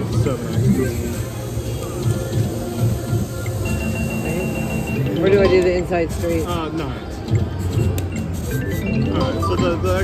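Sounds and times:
slot machine music and tones: 0:03.4 - 0:06.7, 0:07.7 - 0:10.0.

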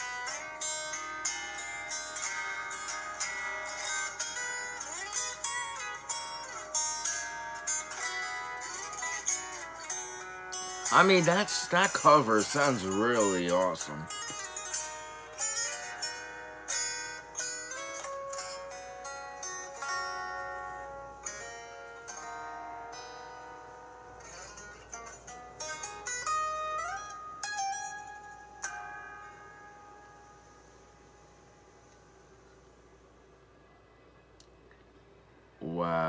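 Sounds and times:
fingerstyle acoustic guitar: 0:00.0 - 0:29.9.

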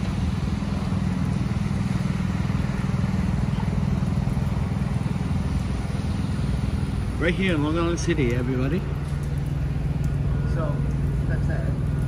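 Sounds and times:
engine humming: 0:00.0 - 0:12.0.

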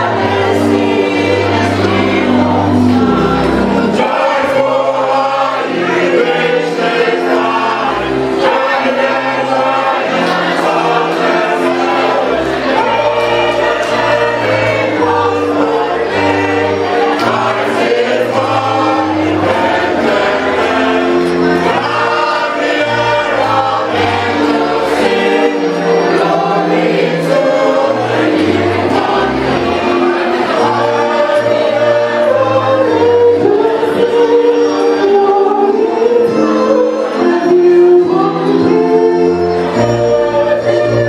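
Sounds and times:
mixed choir singing over loudspeakers: 0:00.0 - 0:41.0.

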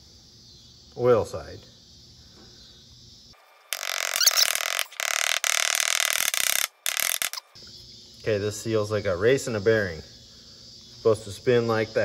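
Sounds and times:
oil seal scraping against hub: 0:03.8 - 0:07.5.

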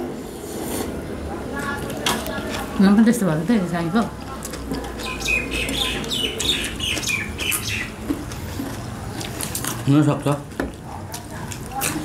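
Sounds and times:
small bird chirping: 0:05.0 - 0:08.0.

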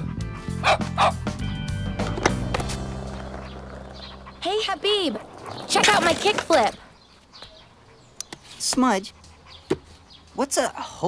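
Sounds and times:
small dog barking: 0:00.6 - 0:01.2.

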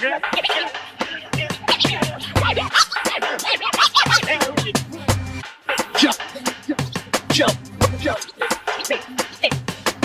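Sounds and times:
drum beat with deep kick: 0:00.0 - 0:10.0
turntable scratching: 0:00.0 - 0:10.0.

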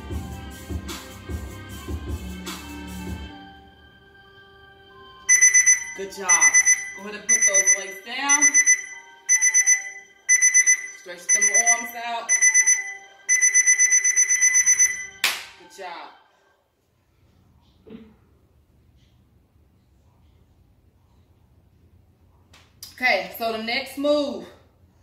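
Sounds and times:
electronic timer beeping: 0:05.3 - 0:15.2
person speaking: 0:05.7 - 0:08.8, 0:11.1 - 0:12.7.

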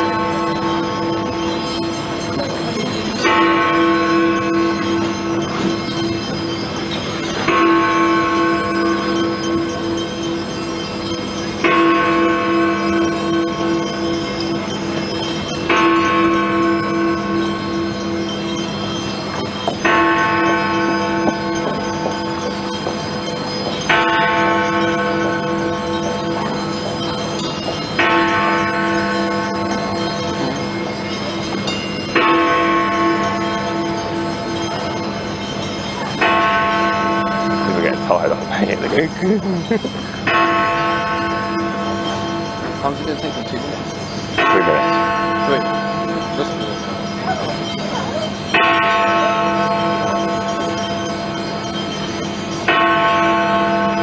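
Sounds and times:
large bell striking: 0:00.0 - 0:54.0
wavering bell hum: 0:00.0 - 0:54.0.

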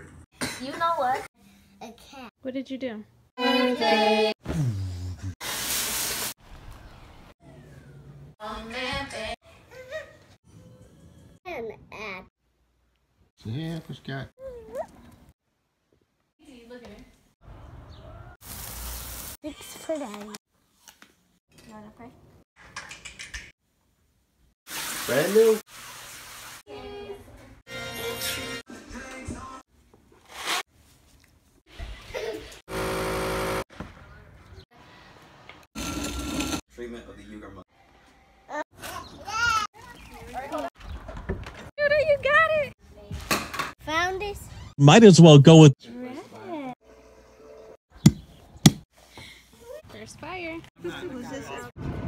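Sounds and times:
greens sizzling in frying pan: 0:18.4 - 0:19.4.

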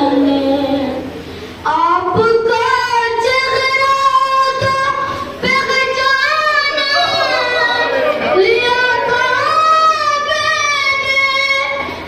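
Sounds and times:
boy singing devotional recitation: 0:00.0 - 0:12.0.

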